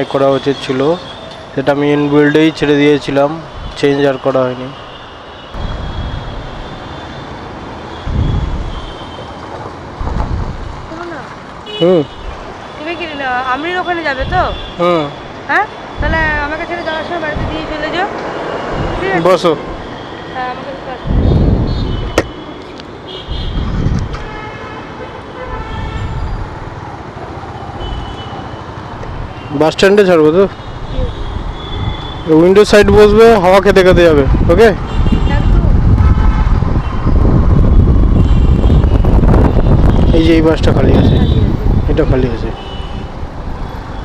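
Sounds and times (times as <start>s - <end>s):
street traffic rumble: 0.0s - 44.0s
vehicle horn tooting: 4.1s - 9.4s, 11.6s - 13.0s, 13.6s - 15.2s, 20.1s - 22.5s, 23.1s - 26.4s, 27.8s - 32.7s, 34.9s - 37.1s, 38.1s - 41.6s, 42.3s - 43.1s.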